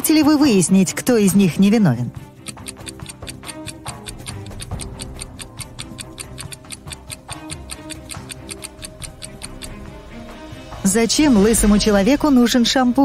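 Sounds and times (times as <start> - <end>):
quiet background music: 0.0 - 13.0
rapid countdown ticking: 2.1 - 12.4.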